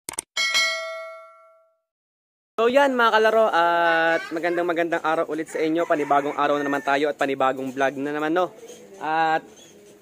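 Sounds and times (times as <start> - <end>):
bell ding: 0.4 - 1.8.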